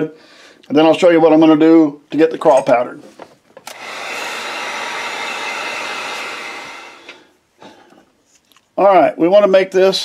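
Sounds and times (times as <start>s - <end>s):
heat gun switch click: 3.6s - 3.9s
heat gun blowing: 3.6s - 7.4s.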